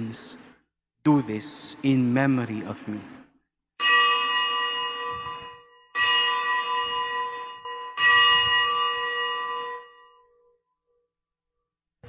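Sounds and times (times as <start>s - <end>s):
bell ringing: 3.8s - 10.7s.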